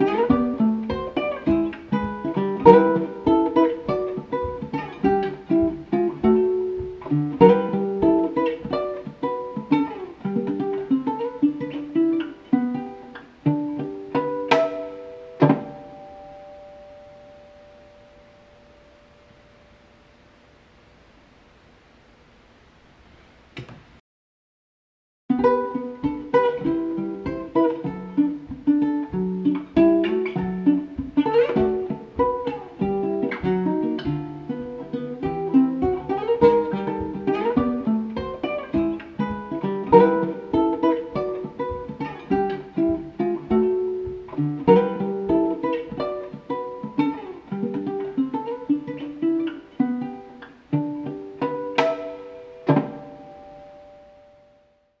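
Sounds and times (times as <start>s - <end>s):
ukulele fingerpicking: 0.0s - 20.1s, 25.3s - 54.8s.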